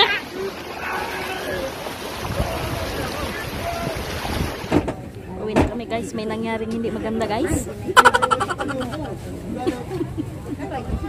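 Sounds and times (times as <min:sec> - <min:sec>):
strong river current rushing: 0:00.0 - 0:04.8
wind buffeting microphone: 0:02.0 - 0:04.7.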